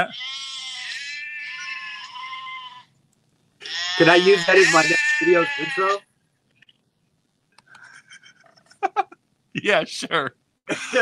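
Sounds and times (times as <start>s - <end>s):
sheep bleating: 0.0s - 2.9s, 3.6s - 6.1s.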